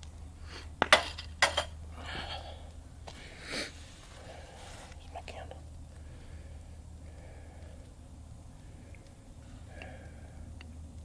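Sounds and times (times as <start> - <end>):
low steady hum: 0.0 - 11.0
soft whispering: 3.7 - 7.9.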